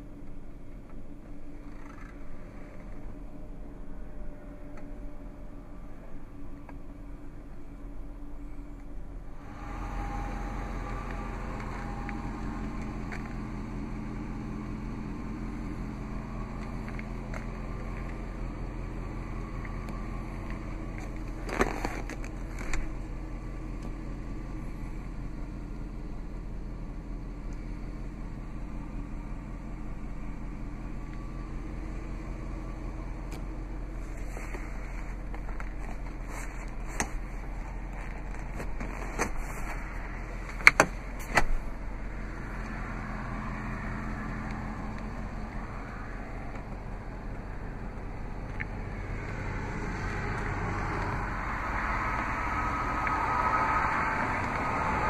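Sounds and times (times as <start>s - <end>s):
vehicle engine idling: 0.0s - 55.0s.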